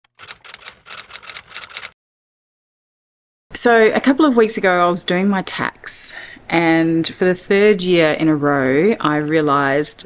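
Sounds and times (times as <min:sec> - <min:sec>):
typewriter keystroke clacks: 0:00.1 - 0:02.0.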